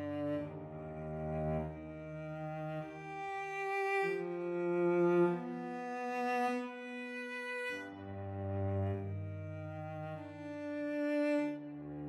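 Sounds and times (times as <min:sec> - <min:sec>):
slow cello music: 0:00.0 - 0:12.0.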